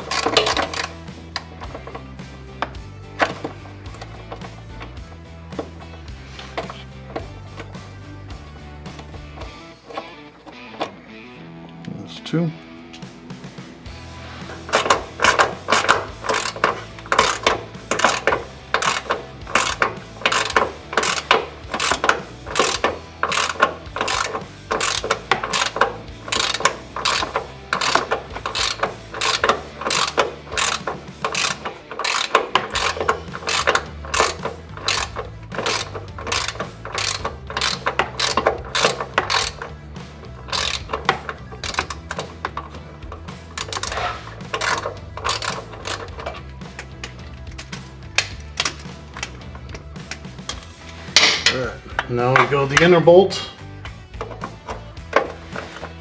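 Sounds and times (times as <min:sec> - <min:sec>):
hand ratchet clicking: 0:00.0 - 0:07.8, 0:14.4 - 0:53.0, 0:53.8 - 0:56.0.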